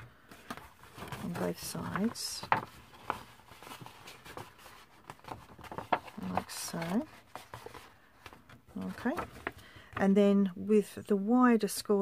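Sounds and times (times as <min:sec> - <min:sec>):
paper rustling and crinkling: 0:00.0 - 0:10.0.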